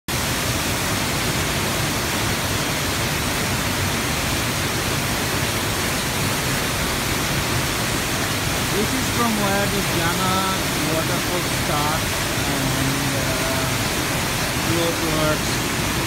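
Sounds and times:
waterfall rushing onto boulders: 0.1 - 16.0.

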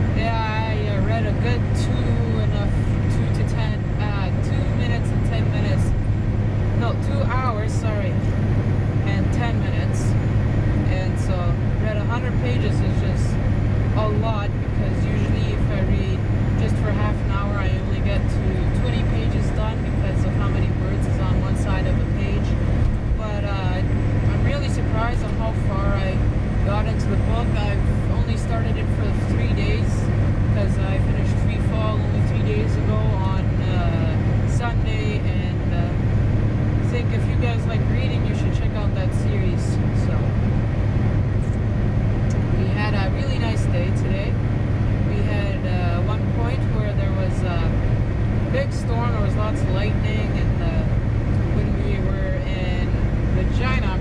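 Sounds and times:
diesel truck engine droning: 0.0 - 54.0
road noise: 0.0 - 54.0.

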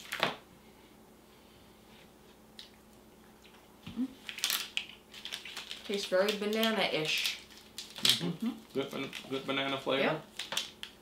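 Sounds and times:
person humming approval: 8.1 - 8.9.

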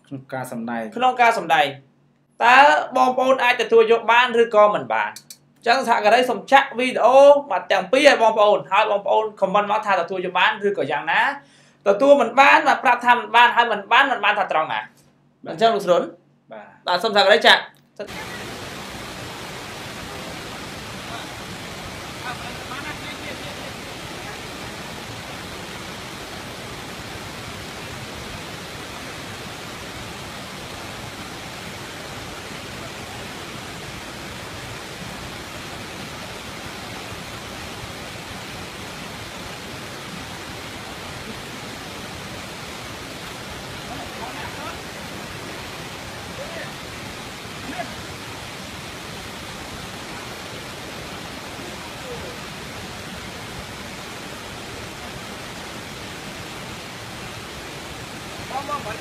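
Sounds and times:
flowing water: 18.1 - 59.0.

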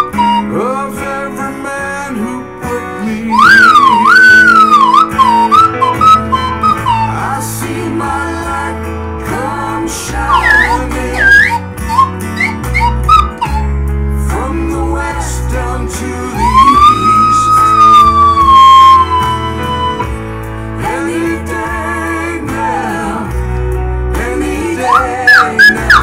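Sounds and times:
slide whistle melody: 0.0 - 1.0, 3.2 - 8.0, 10.2 - 13.8, 16.3 - 20.2, 24.7 - 26.0
recorded backing track: 0.0 - 26.0.

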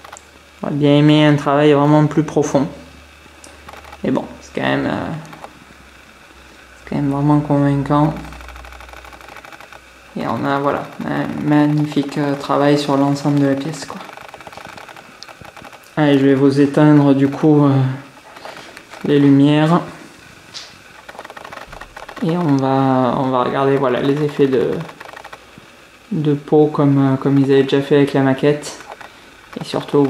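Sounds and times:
person speaking: 0.0 - 5.6, 6.7 - 8.6, 10.1 - 25.4, 26.0 - 30.0
soft hiss: 0.0 - 30.0
camera lens motor ticking: 8.2 - 10.1, 10.8 - 16.0, 20.5 - 22.6, 24.0 - 26.0
small clicks and handling noise: 8.3 - 9.9, 11.6 - 16.0, 20.5 - 22.7, 23.7 - 25.9, 28.6 - 30.0.

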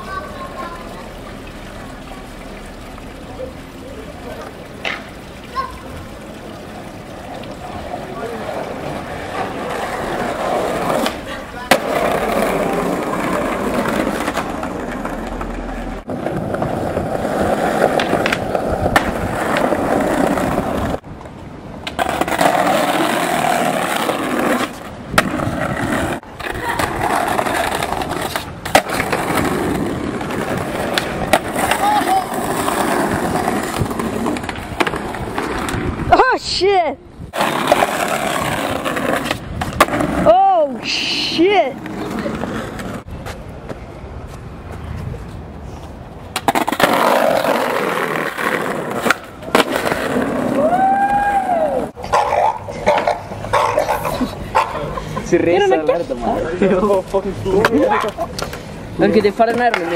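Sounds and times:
skateboard wheels rolling on stone: 0.0 - 59.9
skateboard clack: 4.3 - 5.7, 7.1 - 36.3, 37.3 - 40.8, 46.2 - 55.0, 56.0 - 59.9.

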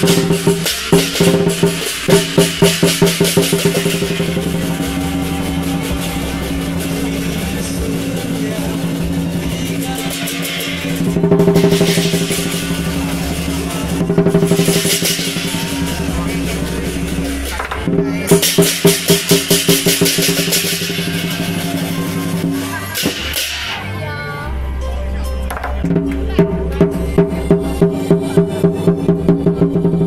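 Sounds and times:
drum: 0.0 - 23.9, 25.5 - 30.0
cymbals: 0.0 - 24.0.

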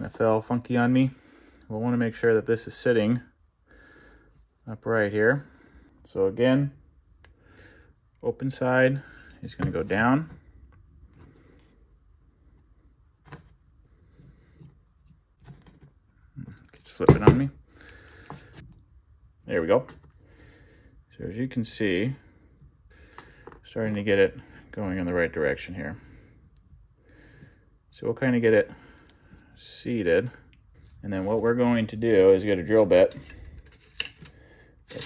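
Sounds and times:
soft breath: 3.6 - 4.6, 7.3 - 8.0, 25.9 - 27.8.

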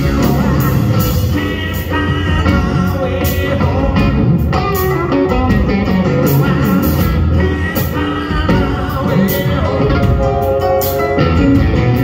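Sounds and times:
blues-rock band playing: 0.0 - 12.0
electric guitar lead line: 0.0 - 12.0.

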